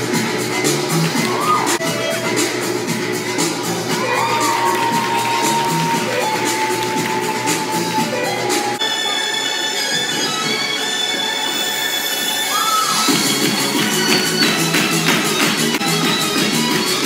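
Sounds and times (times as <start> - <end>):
show music with steady beat: 0.0 - 8.8
audience cheering and shouting: 1.2 - 2.4, 3.7 - 8.8, 12.2 - 14.6.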